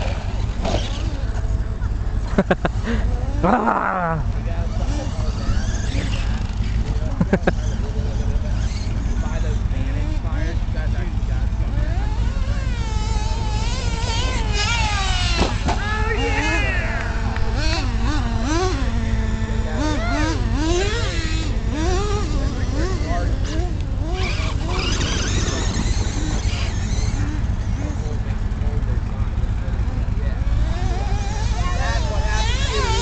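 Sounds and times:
rc truck motors whining: 0.0 - 33.0
steady low rumble: 6.2 - 32.4.

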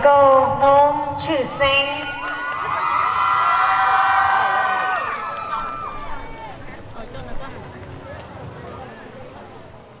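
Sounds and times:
audience talking outdoors: 0.0 - 10.0.

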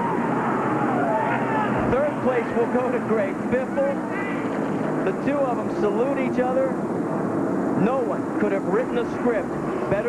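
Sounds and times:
people shouting and whooping: 0.0 - 2.5
steady engine drone: 0.0 - 10.0.

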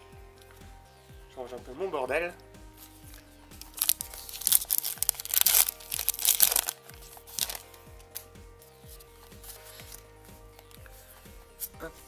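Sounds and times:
background music: 0.0 - 12.0
foil wrapper tearing and crinkling: 3.7 - 7.6.

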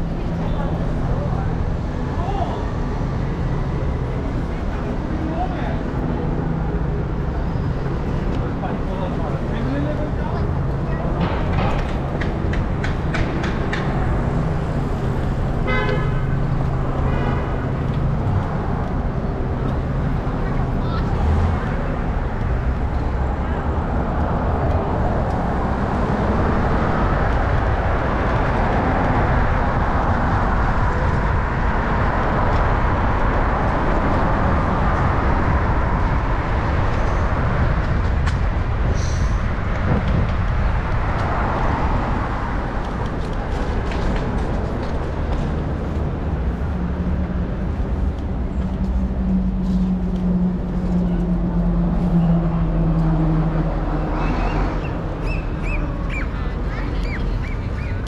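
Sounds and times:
rumble of passing vehicles: 0.0 - 58.0
car horn honking: 15.6 - 16.4.

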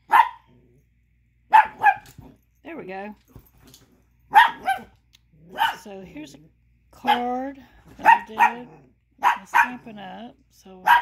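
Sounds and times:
puppy yapping: 0.0 - 0.5, 1.5 - 2.2, 4.3 - 5.8.

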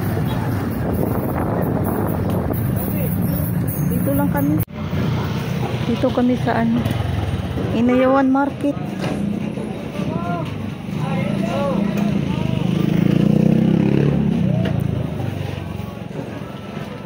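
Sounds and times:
people's voices: 0.0 - 17.0
motorcycle engine revving: 3.9 - 7.9, 10.8 - 15.8.

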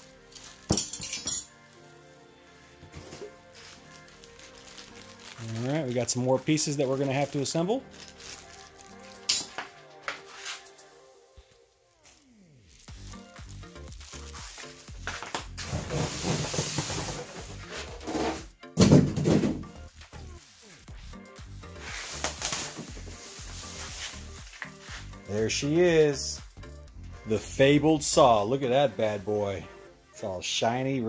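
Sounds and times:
styrofoam scraping against cardboard: 15.2 - 18.5, 21.8 - 25.2.

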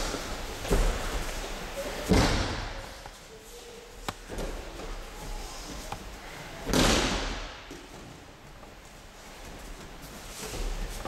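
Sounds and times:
body thud and slap on mat: 2.1 - 2.8, 6.7 - 7.4.

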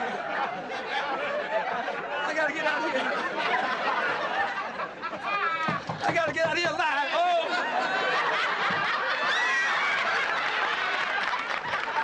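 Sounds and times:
audience laughing: 0.0 - 12.0.

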